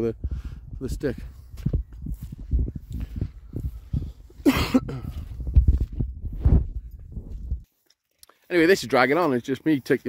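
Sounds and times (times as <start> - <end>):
footsteps through grass: 1.2 - 4.4, 5.0 - 9.9
man coughing: 4.4 - 5.3.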